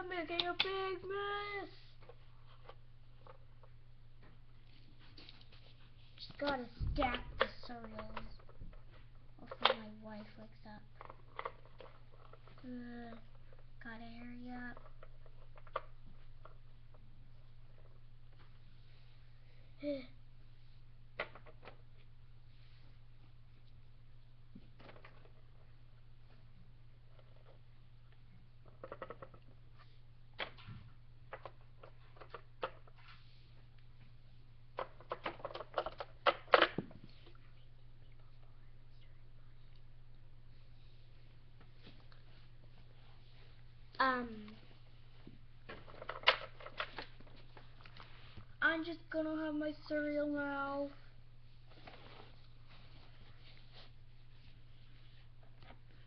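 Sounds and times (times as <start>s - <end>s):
rustling of plastic dolls and fabric: 0.0s - 20.8s, 39.9s - 56.0s
steady low hum: 0.0s - 56.0s.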